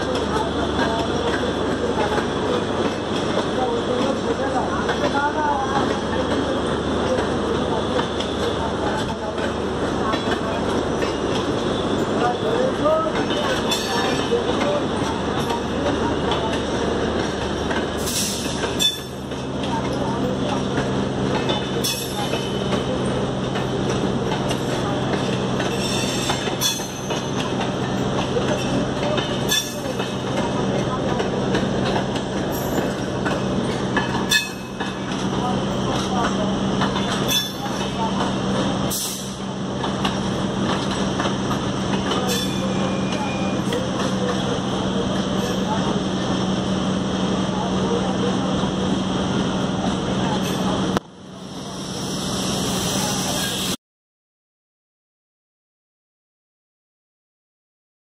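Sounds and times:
train wheel and running noise: 0.0 - 53.8.

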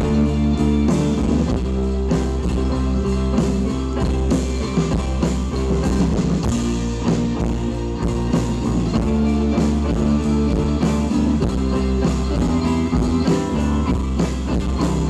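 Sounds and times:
banjo: 0.0 - 15.0
drum kit beat: 0.0 - 15.0
guitars: 0.0 - 15.0
mandolin: 0.0 - 15.0.

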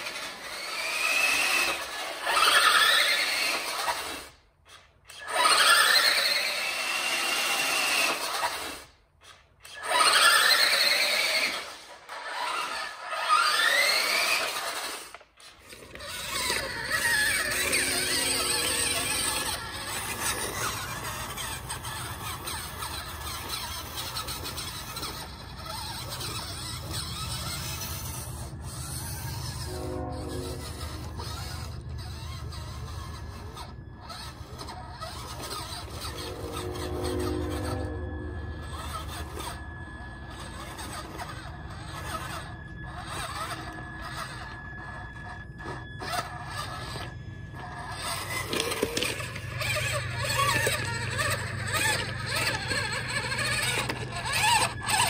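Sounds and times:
toy truck motor whining: 0.0 - 55.0
toy truck scraping over rocks: 0.0 - 55.0.

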